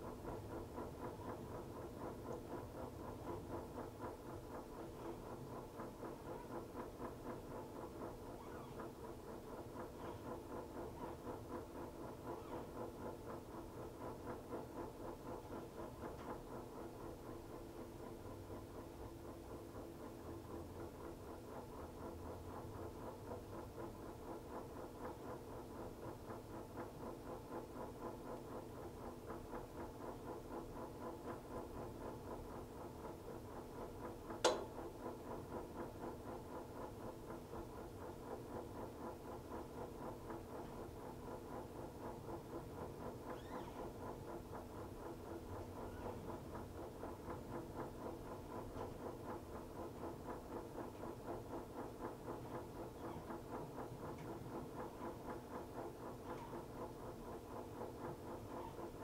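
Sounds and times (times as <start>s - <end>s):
washing machine pulsing hum: 0.0s - 59.0s.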